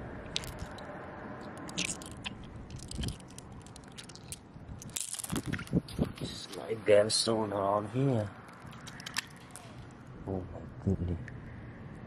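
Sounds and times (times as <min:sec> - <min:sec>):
sharp clicks: 0:08.5 - 0:10.0.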